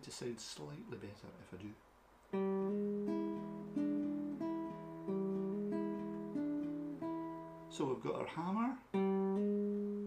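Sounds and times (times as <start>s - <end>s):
acoustic guitar blues figure: 2.3s - 10.0s.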